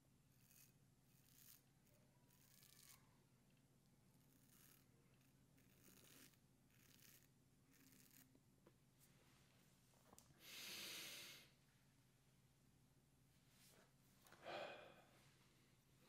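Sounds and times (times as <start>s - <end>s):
razor scraping beard stubble: 0.3s - 3.1s, 4.1s - 8.4s.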